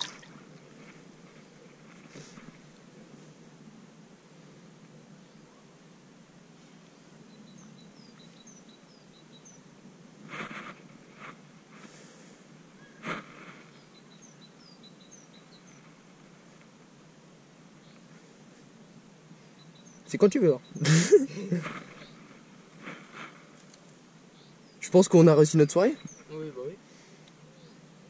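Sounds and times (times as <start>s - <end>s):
water splashes: 0.0s - 0.5s
faint high bird chirps: 6.9s - 9.7s, 12.7s - 16.0s, 19.4s - 20.9s.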